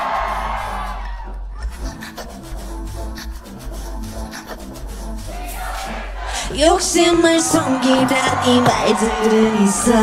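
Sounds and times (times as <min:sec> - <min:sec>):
steady low bass: 0:00.0 - 0:07.2.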